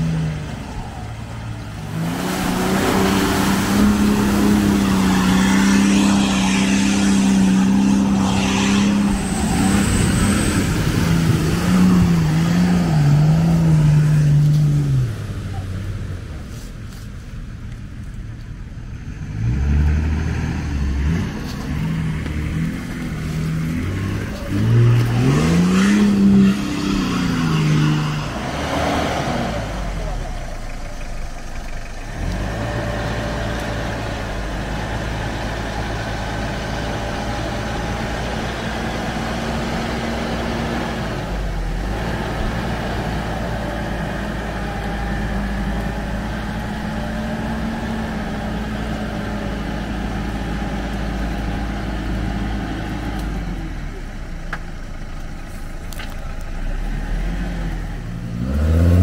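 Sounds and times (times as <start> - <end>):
car engine revving: 0.0 - 17.0, 17.6 - 59.0.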